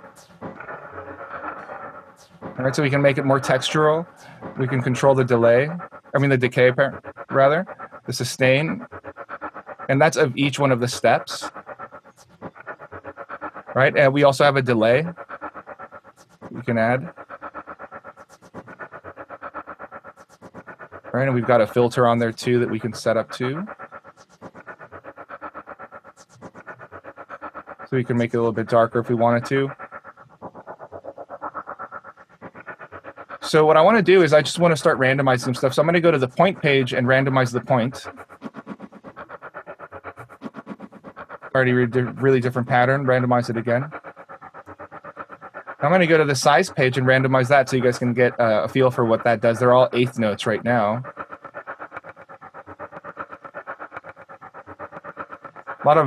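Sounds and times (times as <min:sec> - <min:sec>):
glitchy stuttering sampled loop: 0:00.0 - 0:44.0, 0:44.7 - 0:52.2, 0:52.8 - 0:56.0.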